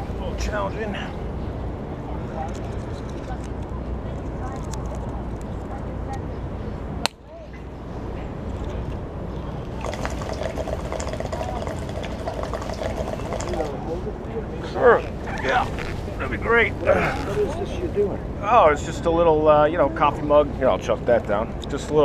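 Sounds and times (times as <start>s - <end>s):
city rumble: 0.0s - 22.0s
water bubbling in waterpipe: 9.7s - 13.7s.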